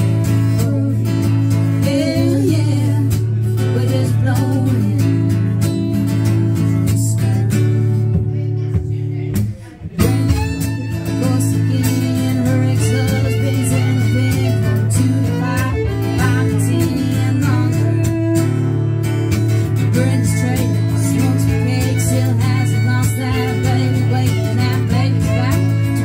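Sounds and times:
woman singing: 0.0s - 18.8s, 19.6s - 26.0s
strummed acoustic guitar: 0.0s - 26.0s
bowed fiddle: 10.0s - 26.0s.

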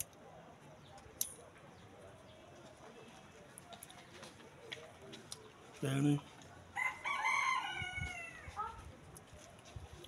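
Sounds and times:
rooster crowing: 6.8s - 8.5s.

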